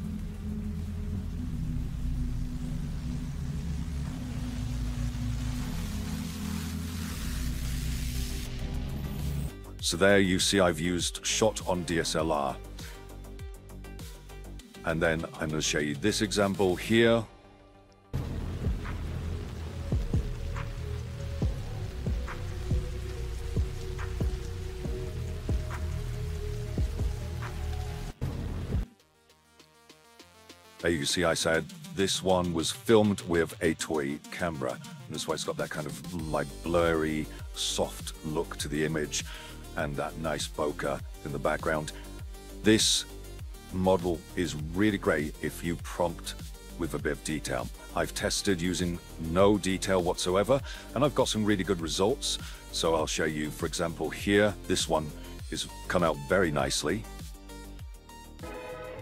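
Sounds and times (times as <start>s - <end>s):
rain hiss: 0.0s - 9.5s, 18.2s - 28.2s, 36.2s - 44.5s, 50.5s - 53.6s
ambient music drone: 0.0s - 9.6s, 58.3s - 59.0s
low pulsing beat: 18.2s - 28.9s.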